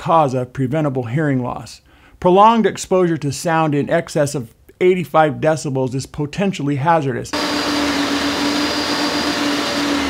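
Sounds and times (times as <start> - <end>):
engine-driven machine running: 7.4 - 10.0.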